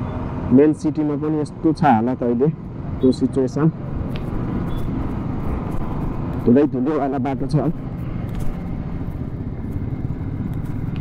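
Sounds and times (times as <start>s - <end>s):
wind and road noise: 0.0s - 11.0s
motorcycle engine running: 3.8s - 11.0s.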